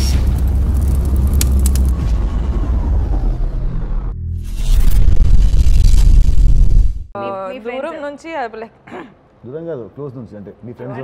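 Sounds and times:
deep rumbling bass drone: 0.0 - 7.2.

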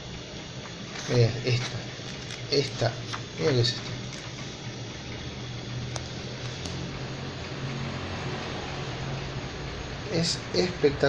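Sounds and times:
electric fan whirring: 0.0 - 11.0.

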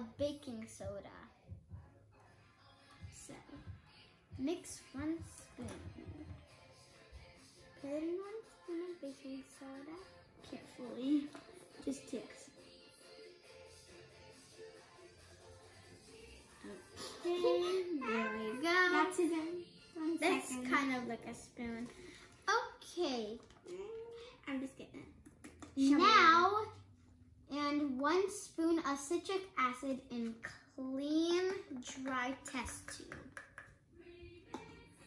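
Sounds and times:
girl singing long notes: 16.6 - 20.2.

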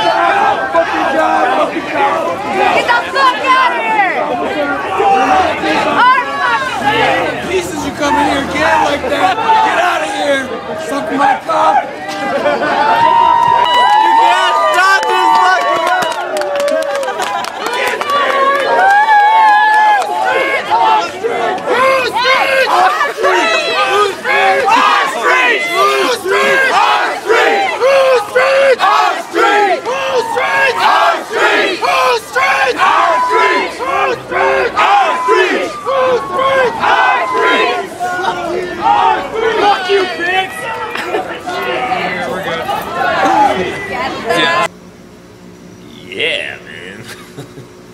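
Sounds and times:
crowd shouting and yelling: 0.0 - 44.7.

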